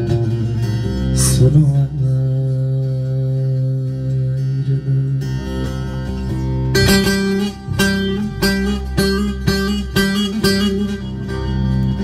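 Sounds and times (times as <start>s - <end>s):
long-necked lute accompaniment: 0.0s - 12.0s.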